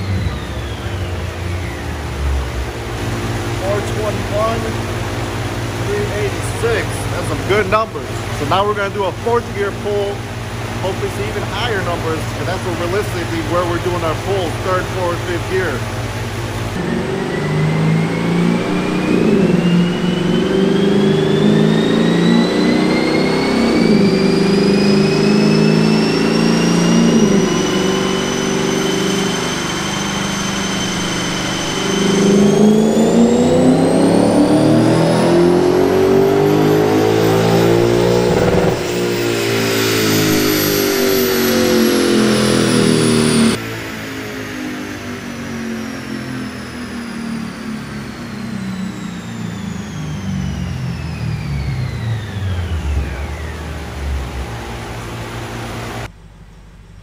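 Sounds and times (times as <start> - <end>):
car engine revving on dyno: 0.0 - 56.1
high whine: 0.0 - 57.0.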